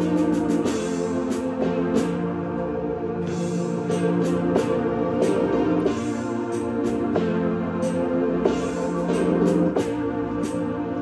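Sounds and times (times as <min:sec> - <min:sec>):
keyboard chords: 0:00.0 - 0:11.0.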